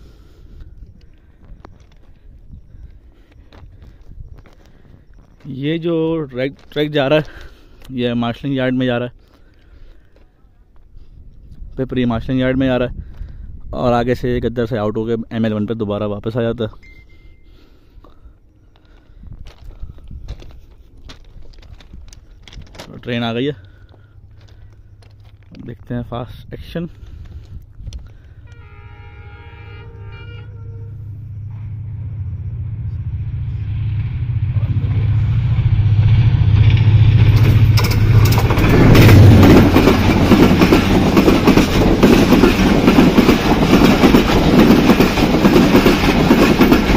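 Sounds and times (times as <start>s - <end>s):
wind rumbling on microphone: 0.0s - 5.4s, 10.8s - 14.7s, 19.1s - 22.8s, 24.6s - 28.6s
footsteps crunching on gravel: 18.8s - 26.1s
low steady rumble: 26.5s - 42.2s.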